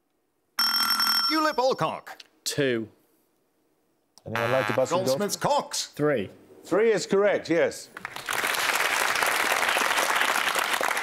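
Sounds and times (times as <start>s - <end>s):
electronic quiz buzzer: 4.3s - 5.2s.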